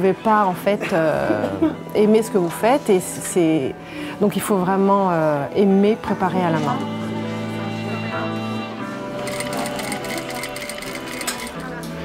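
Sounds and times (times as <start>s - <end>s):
background music: 0.0s - 12.0s
sewing machine stitching: 9.2s - 11.6s.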